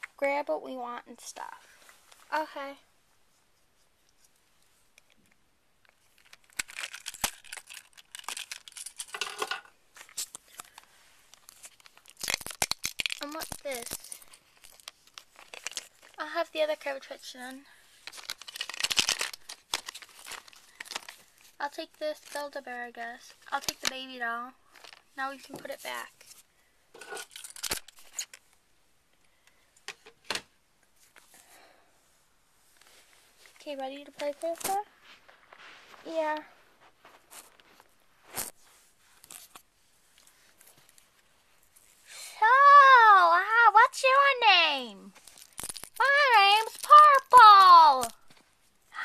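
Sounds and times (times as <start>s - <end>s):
girl talking in play voice: 0.2s - 1.7s, 2.3s - 2.9s, 13.2s - 14.2s, 16.2s - 17.7s, 21.6s - 26.2s, 33.6s - 34.9s, 36.0s - 36.5s, 42.4s - 45.2s, 46.0s - 48.2s
toys rummaged in plastic bin: 6.2s - 12.3s, 24.7s - 26.1s, 27.0s - 28.3s, 45.2s - 48.2s
toys rustling and clicking: 22.0s - 26.4s, 33.5s - 34.9s, 45.2s - 48.4s.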